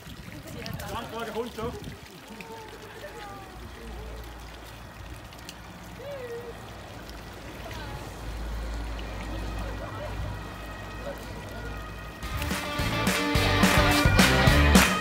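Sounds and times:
fountain water pouring into basin: 0:00.0 - 0:15.0.

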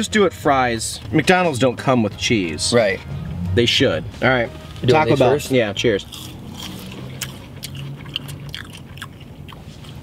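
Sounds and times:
people chewing crunchy fries: 0:06.0 - 0:10.0.

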